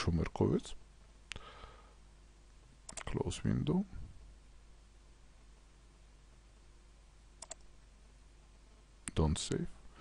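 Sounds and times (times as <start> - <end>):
computer mouse button clicking: 7.4 - 7.6.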